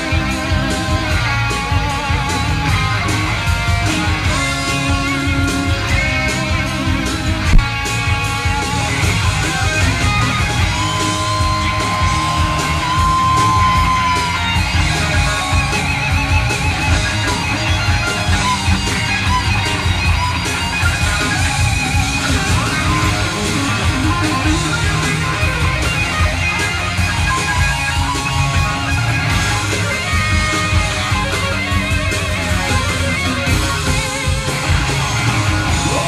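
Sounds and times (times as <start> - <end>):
bass guitar: 0.0 - 36.0
drums: 0.0 - 36.0
electric guitar with vibrato: 0.0 - 36.0.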